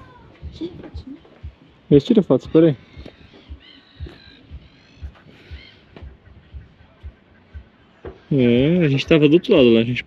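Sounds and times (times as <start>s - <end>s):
footsteps on wooden deck: 0.0s - 9.2s
faint high bird calls: 0.0s - 9.8s.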